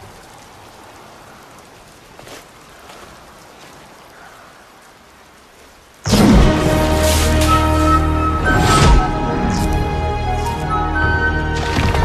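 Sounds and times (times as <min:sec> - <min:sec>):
faint flickering crackle: 0:00.0 - 0:08.2.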